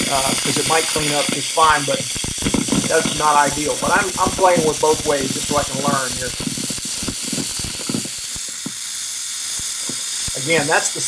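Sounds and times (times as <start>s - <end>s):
welding arc hissing and crackling: 0.0s - 11.0s.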